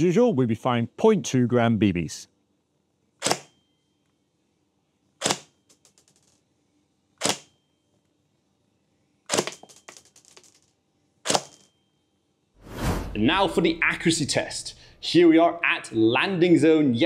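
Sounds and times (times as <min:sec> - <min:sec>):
airsoft rifle shots cracking: 0:03.2 - 0:03.5.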